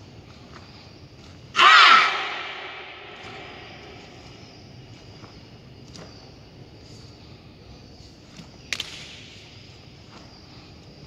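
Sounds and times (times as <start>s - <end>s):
group shouting in unison: 1.6s - 3.6s.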